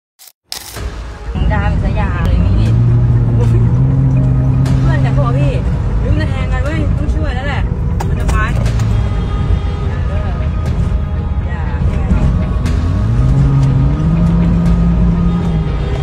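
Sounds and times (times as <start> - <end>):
low steady drone: 1.2 - 16.0
road traffic from inside car: 1.2 - 16.0.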